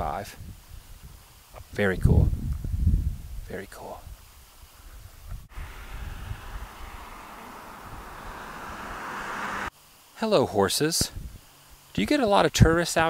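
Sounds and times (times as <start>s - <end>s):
wind buffeting microphone: 2.0s - 3.5s, 4.9s - 9.7s.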